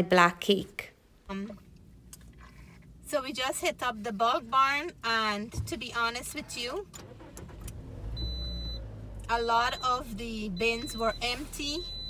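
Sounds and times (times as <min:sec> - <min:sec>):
car engine idling: 0:01.4 - 0:12.0.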